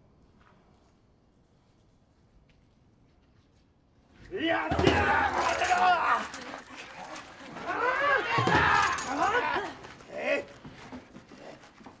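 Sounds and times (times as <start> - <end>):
people shouting battle cries: 4.3 - 10.5.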